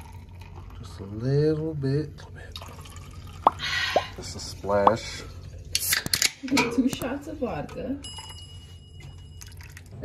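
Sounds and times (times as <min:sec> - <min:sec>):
wine glugging from bottle: 0:02.8 - 0:04.2.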